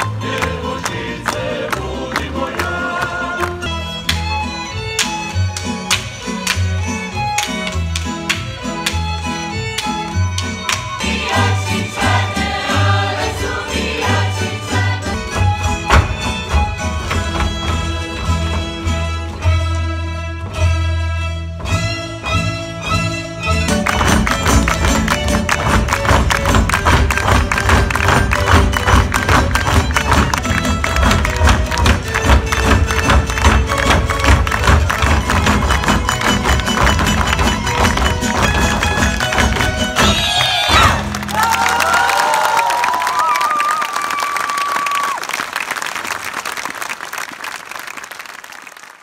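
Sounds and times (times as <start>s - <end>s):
folk ensemble dance music: 0.0s - 49.0s
audience applause and cheering: 23.7s - 49.0s.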